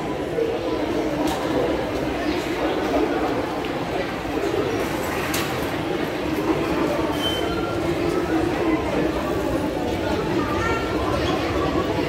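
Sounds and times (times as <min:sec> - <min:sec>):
passers-by talking: 0:00.0 - 0:12.0.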